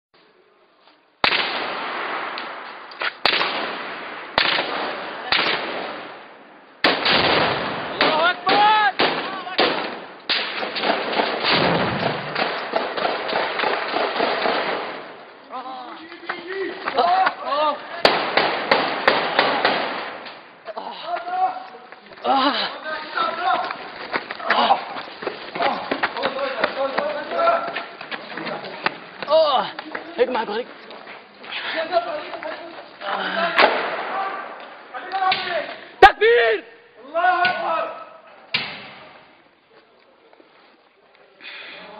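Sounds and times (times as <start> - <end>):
rifle shots with echo: 1.2 - 2.6, 3.2 - 15.2, 18.0 - 20.2
sharp knocks and cracks: 6.9 - 15.1, 18.0 - 20.4, 34.6 - 35.7, 38.5 - 39.1
man shouting: 8.1 - 9.6, 15.5 - 18.0, 20.7 - 21.6, 35.0 - 38.2
men shouting: 24.4 - 27.8.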